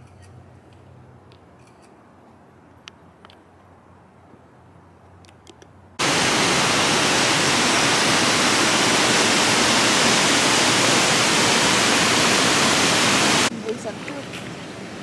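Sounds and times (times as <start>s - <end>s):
waterfall rushing: 6.0s - 15.0s.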